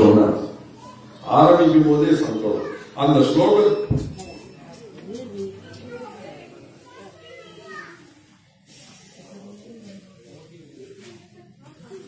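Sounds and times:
faint voices: 0:00.0 - 0:12.0
child's voice: 0:02.6 - 0:03.0, 0:06.8 - 0:08.1
short hiss: 0:08.6 - 0:09.4.

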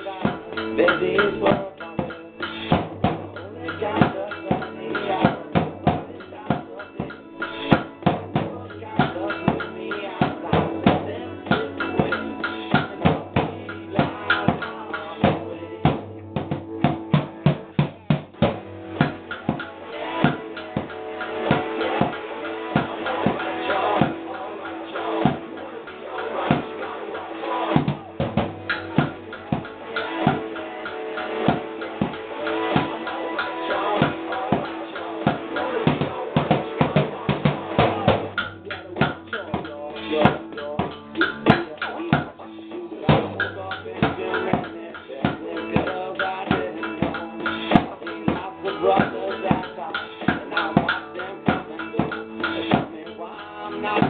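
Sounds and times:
drums played with sticks: 0:00.0 - 0:54.0
recorded song with guitar and vocals: 0:00.0 - 0:54.0.

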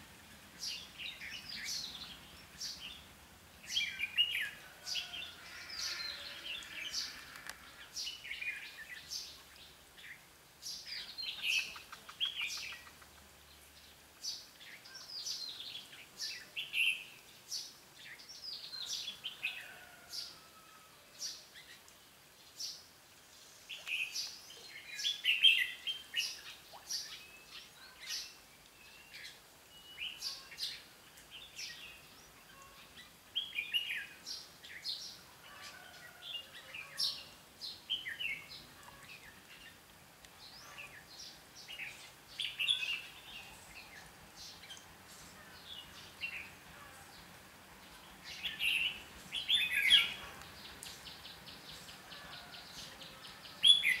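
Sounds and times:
birds chirping and singing: 0:48.3 - 0:54.0.

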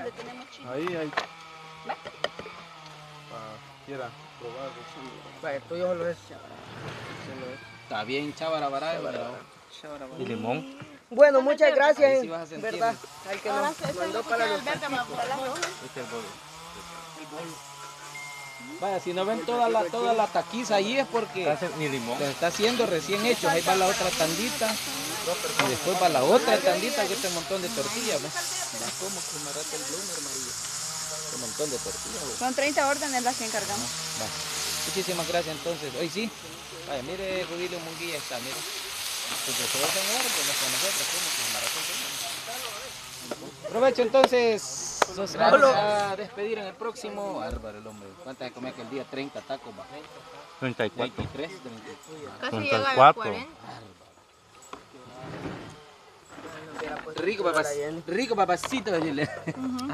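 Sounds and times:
people talking at a meal table: 0:00.0 - 0:59.9
meat sizzling on griddle: 0:11.2 - 0:53.4, 0:56.6 - 0:59.3.

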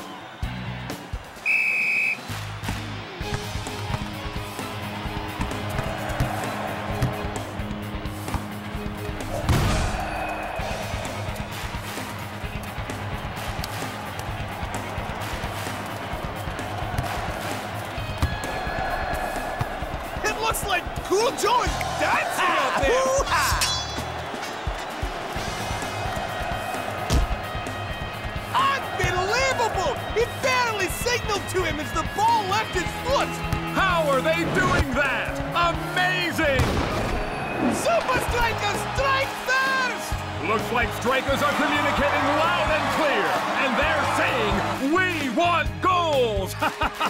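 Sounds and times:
background music with beat: 0:00.0 - 0:22.1, 0:22.8 - 0:36.6
referee's whistle blast: 0:01.4 - 0:02.3.

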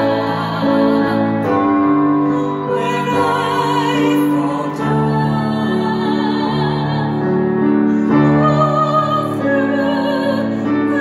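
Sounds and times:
woman singing a hymn: 0:00.0 - 0:01.7, 0:02.4 - 0:07.4, 0:08.0 - 0:11.0
digital piano: 0:00.0 - 0:11.0.

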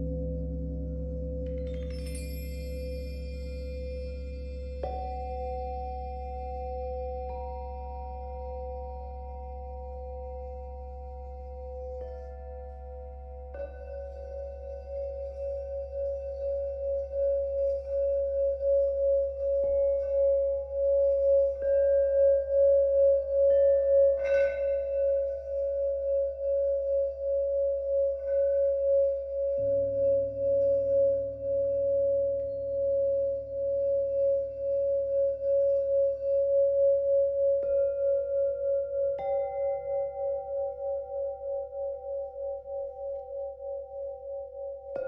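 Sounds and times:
deeper bowl tone: 0:00.0 - 0:45.0
singing bowl high tone: 0:00.0 - 0:45.0.

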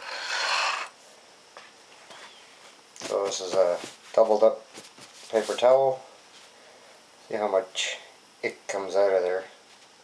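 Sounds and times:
hands rustling and scraping: 0:03.0 - 0:05.7.

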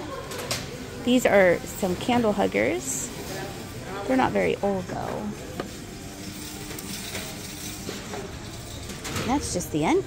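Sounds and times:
shop interior room hum: 0:00.0 - 0:10.0.

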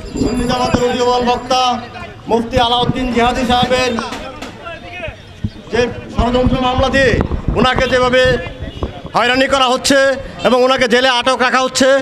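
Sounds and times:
man speaking into a microphone: 0:00.2 - 0:12.0.

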